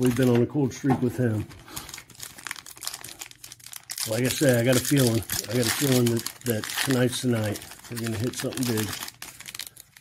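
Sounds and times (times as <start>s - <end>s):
foil wrapper crinkling: 1.5s - 10.0s.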